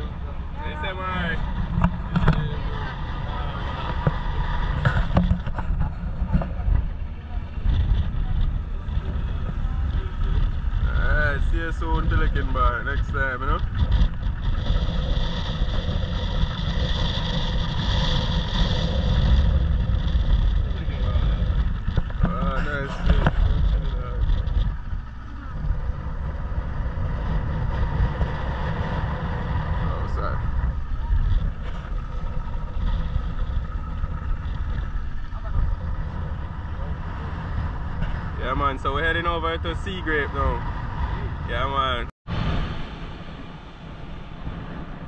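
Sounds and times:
outboard motor running: 0.0 - 45.0.

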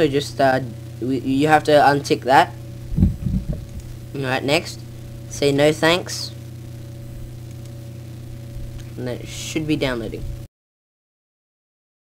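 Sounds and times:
microphone electrical hum and hiss: 0.0 - 10.5
faint clicks: 7.5 - 7.8.

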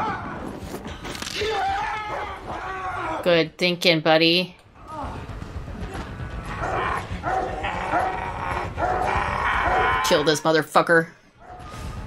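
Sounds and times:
dog barking and snarling: 6.6 - 10.1.

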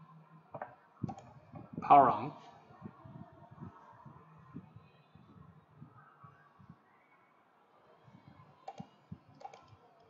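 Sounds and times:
computer mouse clicks: 0.6 - 1.3, 8.6 - 10.0.

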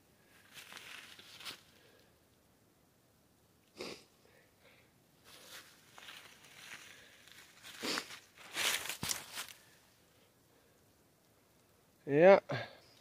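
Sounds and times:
footsteps in dry leaves: 0.4 - 1.8, 5.3 - 9.7.

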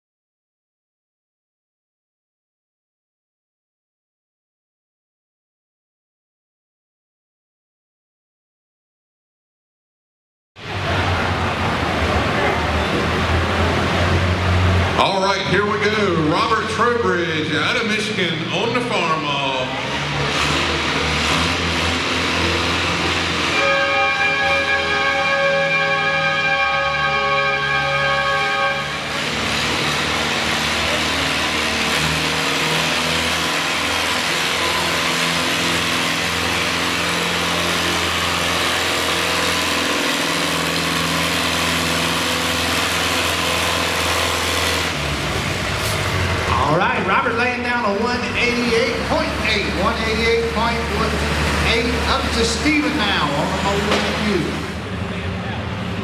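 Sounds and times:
tractor engine pulling hard: 10.6 - 56.0.

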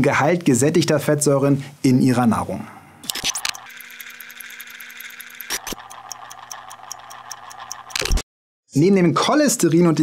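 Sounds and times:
rapid faint high ticking: 3.6 - 8.0.

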